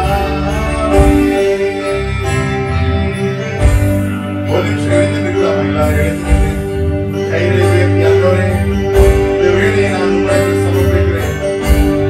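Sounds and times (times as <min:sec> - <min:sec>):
electric bass guitar: 0:00.0 - 0:12.0
worship band music: 0:00.0 - 0:12.0.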